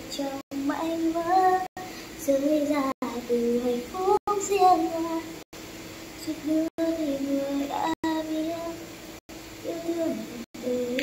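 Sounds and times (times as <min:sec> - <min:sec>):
high childlike singing voice: 0:00.0 - 0:05.3, 0:06.2 - 0:08.8, 0:09.6 - 0:11.0.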